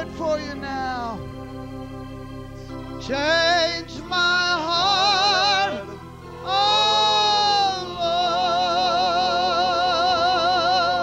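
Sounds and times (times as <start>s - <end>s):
organ holding a chord: 0.0s - 11.0s.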